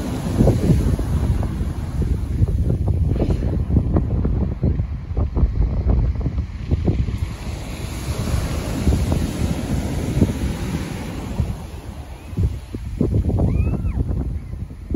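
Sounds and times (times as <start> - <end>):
waves breaking on stony beach: 0.0 - 14.9
wind buffeting microphone: 0.0 - 14.9.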